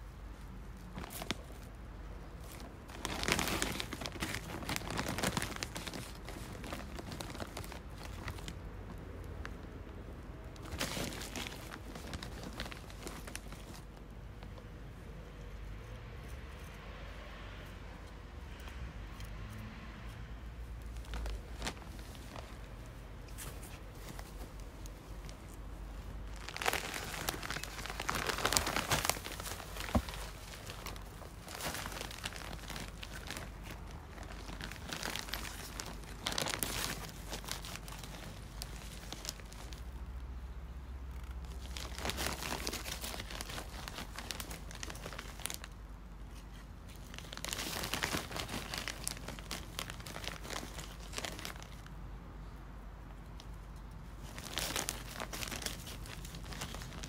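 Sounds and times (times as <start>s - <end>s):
plastic bag crinkling: 0.6s - 14.6s, 20.8s - 40.5s, 41.1s - 52.0s, 53.6s - 57.0s.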